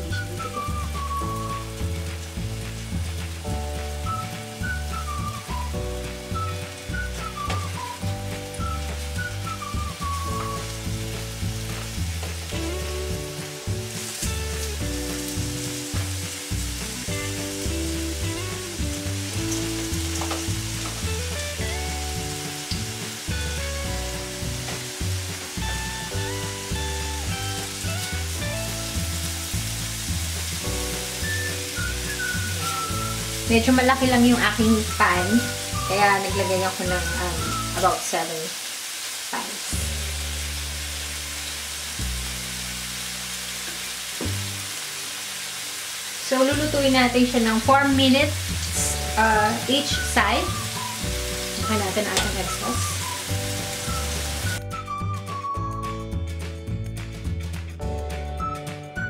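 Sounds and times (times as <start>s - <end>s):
music with pulsing bass: 0.0s - 34.7s
burger patties sizzling in pan: 0.0s - 54.9s.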